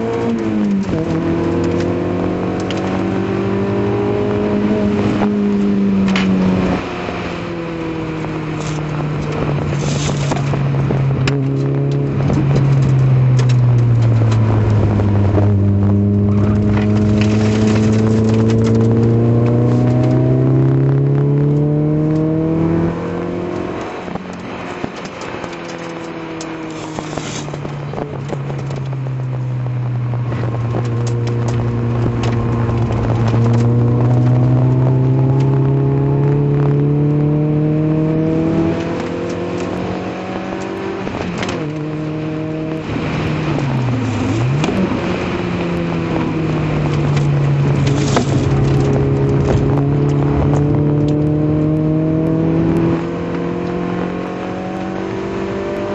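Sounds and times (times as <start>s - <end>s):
car engine revving: 0.0s - 55.9s.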